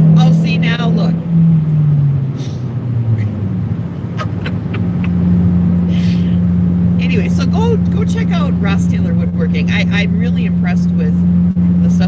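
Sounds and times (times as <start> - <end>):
car engine and road drone: 0.0 - 12.0.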